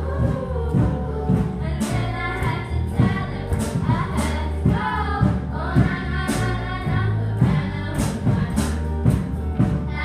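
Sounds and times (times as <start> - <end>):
girls singing together: 0.0 - 10.0.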